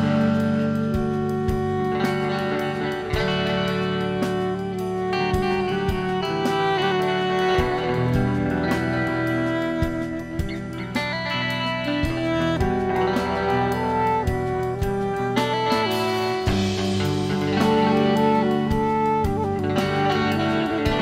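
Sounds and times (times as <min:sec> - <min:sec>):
bass guitar: 0:00.0 - 0:21.0
drums: 0:00.0 - 0:21.0
electric guitars: 0:00.0 - 0:21.0
saxophone: 0:00.0 - 0:21.0.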